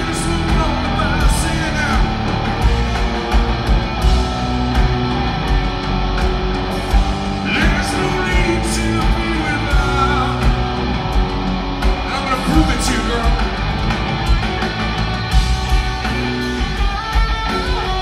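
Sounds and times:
drums and cymbals: 0.0s - 18.0s
electric guitar: 0.0s - 18.0s.

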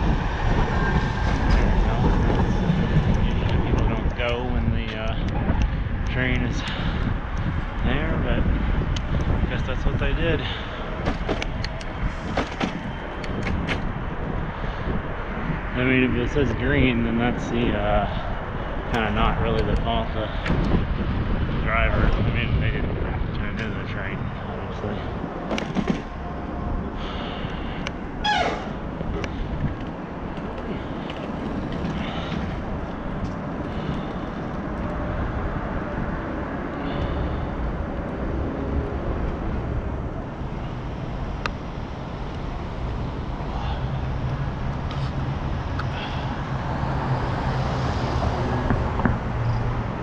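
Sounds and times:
wind and road rumble: 0.0s - 50.0s.

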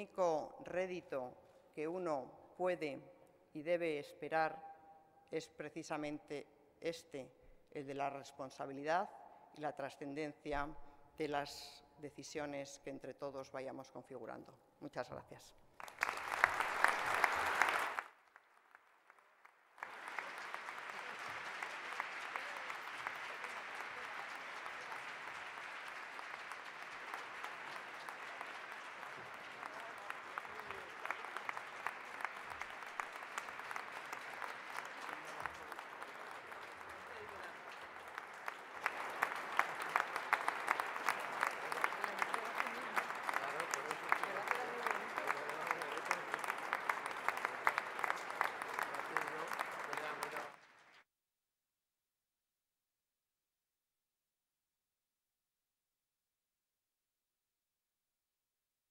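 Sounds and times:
audience applauding: 15.8s - 51.0s.

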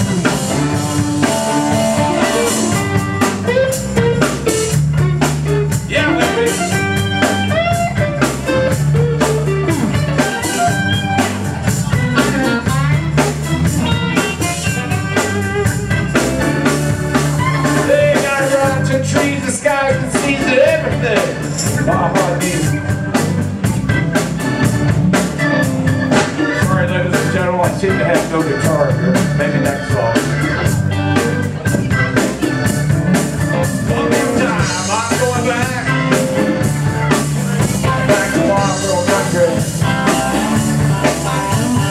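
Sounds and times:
bass and rhythm guitars: 0.0s - 41.9s
drum kit beat: 0.0s - 41.9s
electric guitar lead: 0.0s - 41.9s
live rock band playing: 0.0s - 41.9s.

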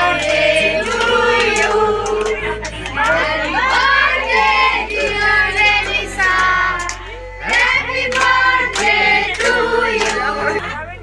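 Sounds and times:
group of voices singing: 0.0s - 10.8s.

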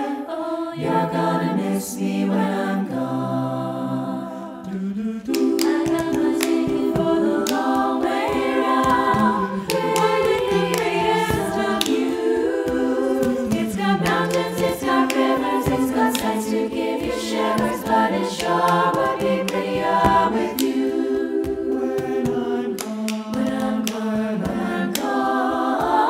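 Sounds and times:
choir singing in harmony: 0.0s - 26.0s.

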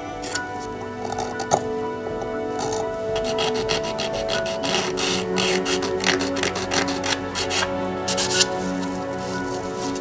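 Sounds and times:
knife blade scraping plastic: 0.2s - 10.0s.

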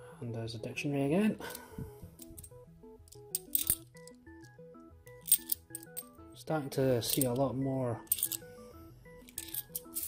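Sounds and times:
simple melody background music: 0.0s - 10.0s
coins clinking: 2.2s - 6.2s, 7.0s - 8.5s, 9.2s - 10.0s.

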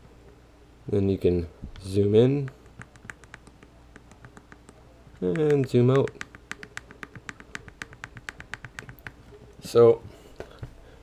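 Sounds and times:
rapid small clicks: 2.4s - 9.3s.

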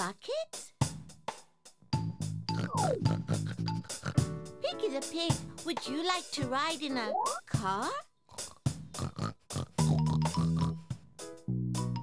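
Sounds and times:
cartoon pig oinking: 2.5s - 4.3s, 8.3s - 10.8s.

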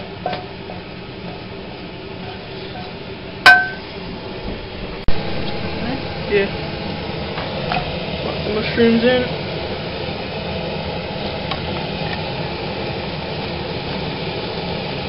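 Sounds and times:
frying pan clang: 0.0s - 0.6s, 2.8s - 3.9s
frying pan noise: 0.0s - 15.0s.

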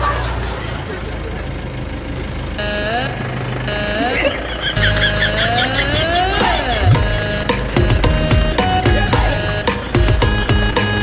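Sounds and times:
vehicle engine idling: 0.0s - 11.0s
pitched tones with rising slides: 2.6s - 9.9s.

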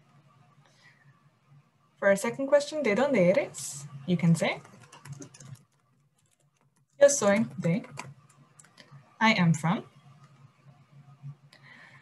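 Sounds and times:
computer keyboard typing: 4.4s - 9.0s.

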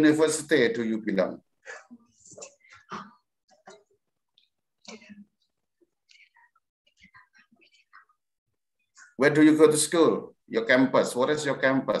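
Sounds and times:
faint broken speech: 1.6s - 9.2s.

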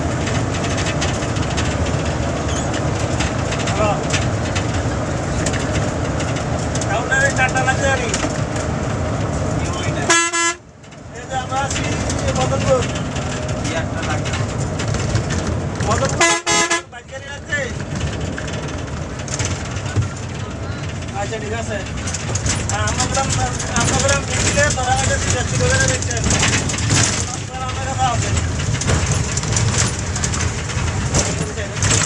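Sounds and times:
bus engine and tyres rumbling: 0.0s - 32.0s
bus horn blasts: 10.0s - 10.7s, 16.1s - 16.9s.

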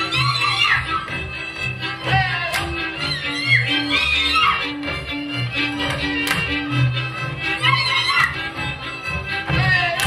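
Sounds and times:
fiddle melody: 0.0s - 10.0s
folk band dance music: 0.0s - 10.0s.

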